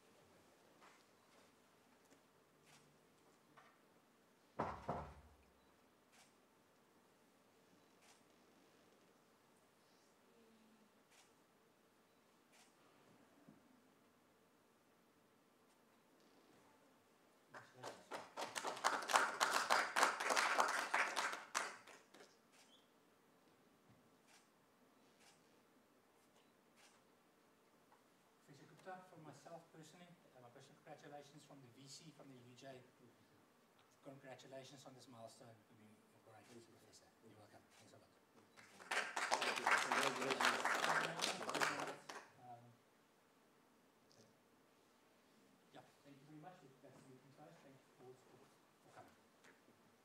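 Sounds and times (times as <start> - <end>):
group of people clapping: 17.5 - 22.4, 38.6 - 42.4
audience applause: 17.6 - 22.1, 38.6 - 42.2.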